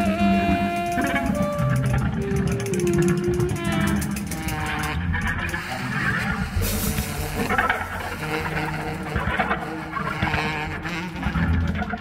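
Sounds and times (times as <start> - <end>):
keyboards: 0.0 - 12.0
saxophone melody: 0.0 - 12.0
drums and cymbals beat: 6.6 - 8.9.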